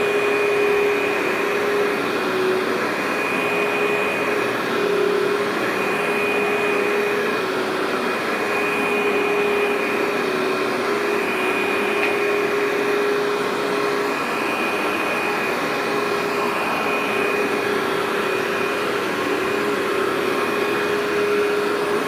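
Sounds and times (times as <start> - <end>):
vacuum cleaner running on carpet: 0.0 - 22.0.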